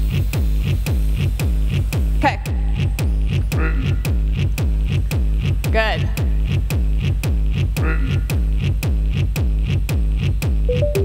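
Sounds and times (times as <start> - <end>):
electronic dance music: 10.7 - 11.0.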